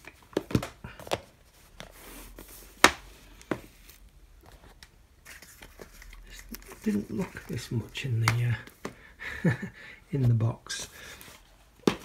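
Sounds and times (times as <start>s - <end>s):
packaging rustling: 3.8s - 8.8s
plastic cases clacking: 4.7s - 9.0s.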